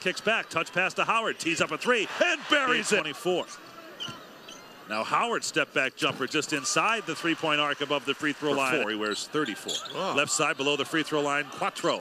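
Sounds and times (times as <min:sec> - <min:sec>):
arena crowd murmur: 0:00.0 - 0:12.0.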